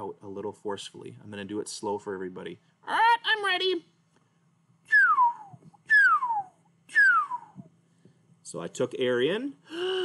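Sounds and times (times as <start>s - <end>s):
man whistling sliding notes: 4.9s - 7.7s.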